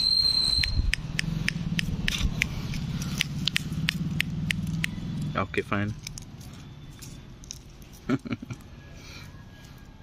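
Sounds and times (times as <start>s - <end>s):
footsteps on leafy dirt path: 2.2s - 4.9s.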